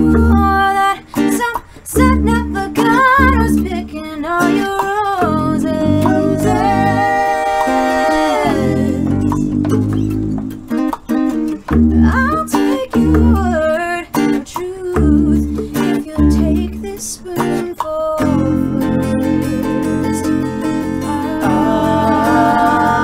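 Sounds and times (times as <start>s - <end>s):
voices singing: 0.0s - 10.2s, 14.6s - 23.0s
acoustic guitar: 0.0s - 23.0s
hand drum: 4.7s - 13.8s.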